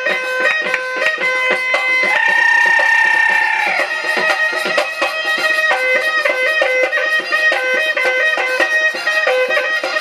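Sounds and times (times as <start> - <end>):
drum beating fast rhythm: 0.0 - 10.0
quick folk melody: 0.0 - 10.0.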